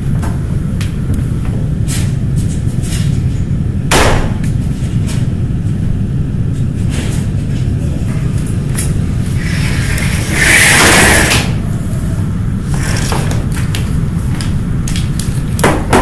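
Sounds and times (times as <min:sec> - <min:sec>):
low rumbling drone: 0:00.0 - 0:15.3.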